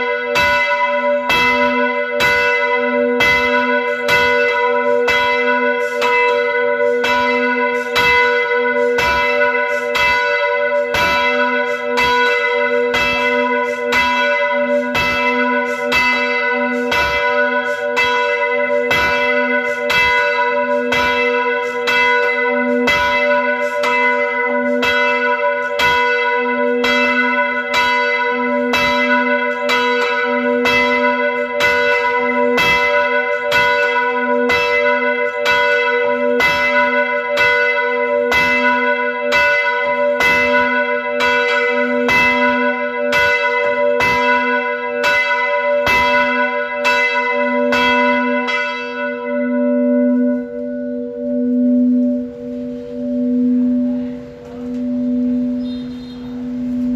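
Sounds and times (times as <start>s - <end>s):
church bell ringing: 0.0s - 56.9s.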